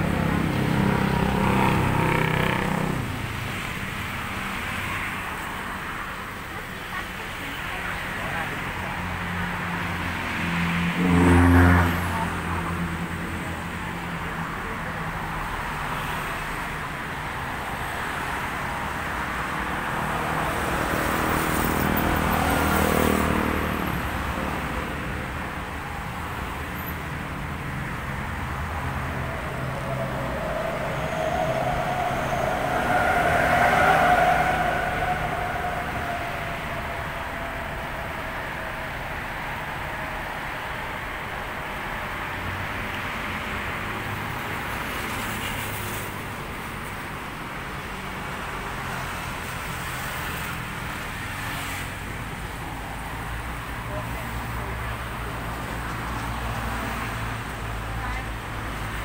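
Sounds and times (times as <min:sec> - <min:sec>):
vehicle engine hum: 0:00.0 - 0:59.0.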